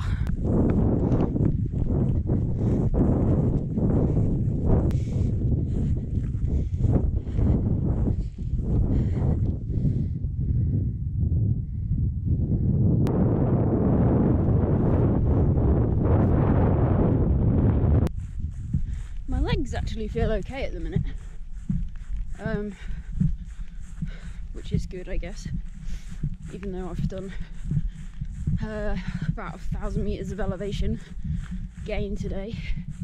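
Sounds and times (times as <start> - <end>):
running footsteps on grass: 0.0 - 9.9, 18.1 - 33.0
wind rumbling on microphone: 0.0 - 33.0.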